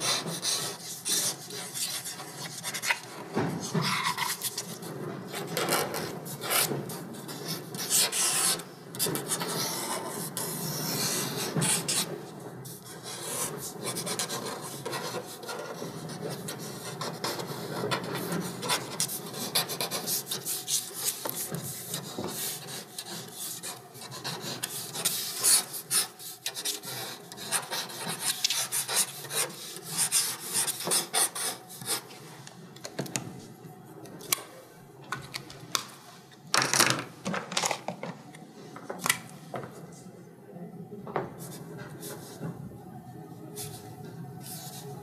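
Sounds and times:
pencil sketching on paper: 0:00.0 - 0:32.2, 0:44.4 - 0:44.9.

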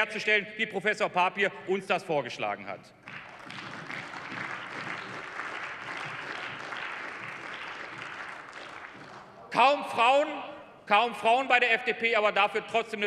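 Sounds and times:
people applauding: 0:03.0 - 0:09.6.

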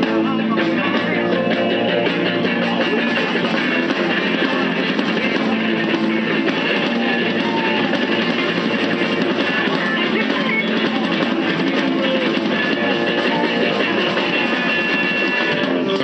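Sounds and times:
rock band playing live: 0:00.0 - 0:16.0.

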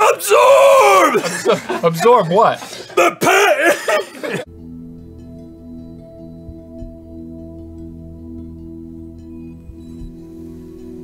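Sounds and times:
sustained ambient music tones: 0:03.8 - 0:11.0.

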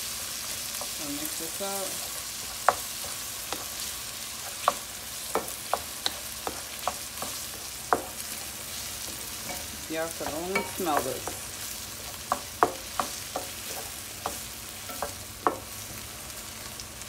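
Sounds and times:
vegetables sizzling in a frying pan: 0:00.0 - 0:17.0.

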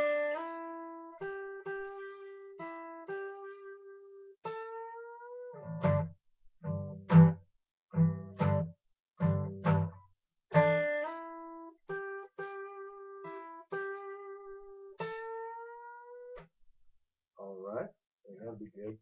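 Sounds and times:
acoustic guitar blues lick: 0:04.4 - 0:16.0.

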